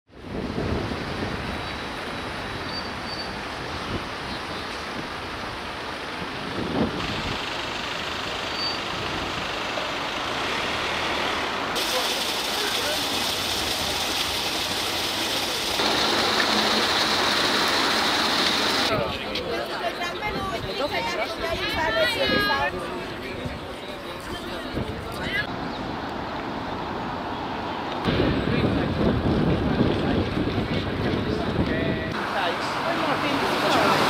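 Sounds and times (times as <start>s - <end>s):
traffic noise: 0.1s - 34.0s
distant voices: 8.5s - 26.0s
fountain water splashing: 11.7s - 19.0s, 32.2s - 34.0s.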